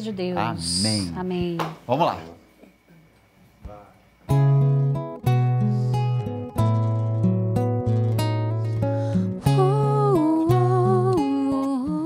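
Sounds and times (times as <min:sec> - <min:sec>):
fingerpicked acoustic guitar: 0:04.2 - 0:12.0
woman singing slow melody: 0:09.4 - 0:12.0.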